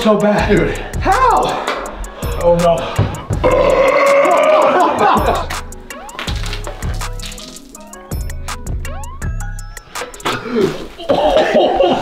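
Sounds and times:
man burping: 3.4 - 5.6.

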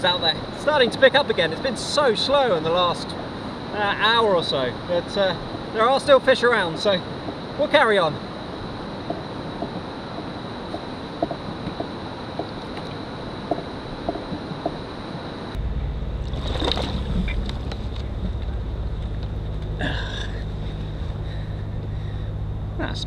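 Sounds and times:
wind rumble on microphone: 6.8 - 23.0.

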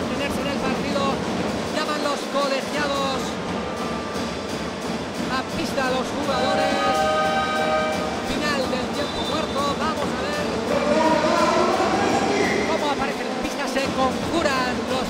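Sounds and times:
crowd chatter and shouting: 0.0 - 15.0
music over sound system: 0.0 - 15.0
arena horn chord: 6.4 - 8.3.

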